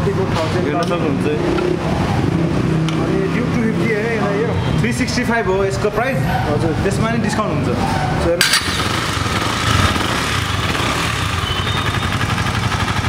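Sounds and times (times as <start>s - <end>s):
motorcycle engine running: 8.4s - 13.0s.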